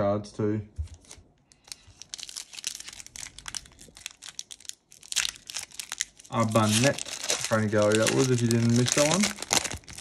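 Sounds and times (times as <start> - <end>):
foil wrapper crinkling: 1.0 - 10.0.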